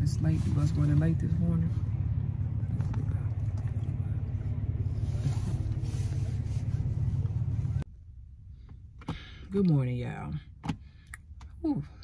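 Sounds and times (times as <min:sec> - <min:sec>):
vehicle rumble inside car cabin: 0:00.0 - 0:12.0.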